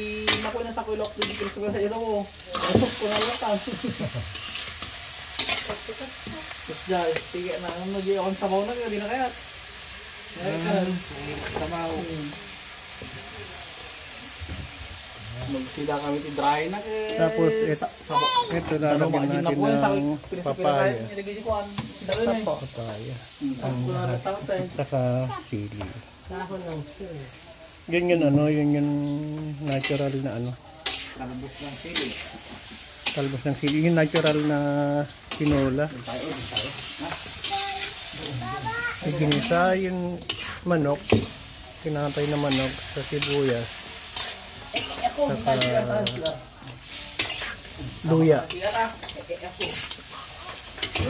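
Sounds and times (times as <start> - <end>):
chicken sizzling in a wok: 0.0 - 51.0
spatula scraping a pan: 0.2 - 1.7, 2.5 - 6.5, 29.6 - 41.4, 42.0 - 51.0.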